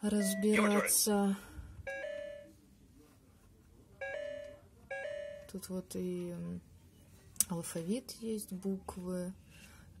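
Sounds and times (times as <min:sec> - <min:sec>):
toy laptop beeping: 0:00.2 - 0:01.0.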